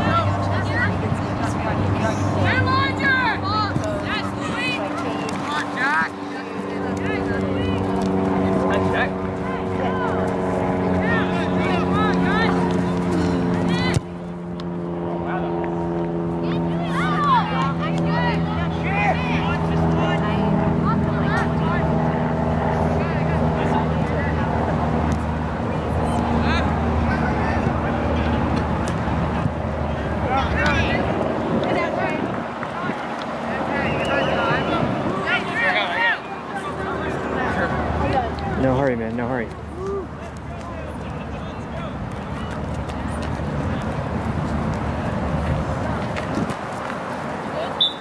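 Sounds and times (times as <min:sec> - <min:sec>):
voices and shouts: 0:00.0 - 0:28.7, 0:29.4 - 0:44.3
steady engine-like drone: 0:00.0 - 0:48.0.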